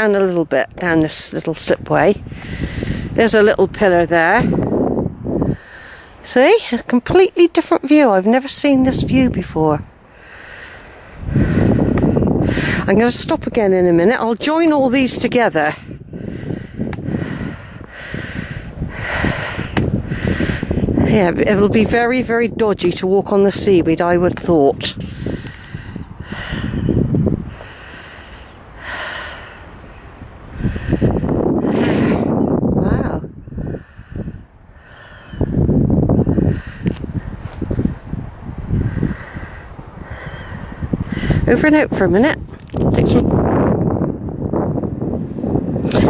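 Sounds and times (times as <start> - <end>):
wind rumble on microphone: 0.0 - 46.0
person breathing close to microphone: 2.2 - 3.2, 4.4 - 6.3, 10.0 - 13.0, 15.7 - 21.4, 24.8 - 41.6
camera handling rumble: 42.4 - 43.4.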